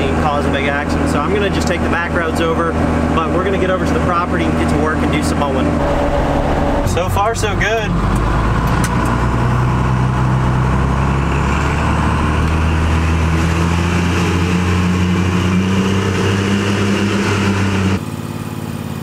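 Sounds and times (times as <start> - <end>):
diesel engine running: 0.0 - 19.0
road noise: 0.0 - 19.0.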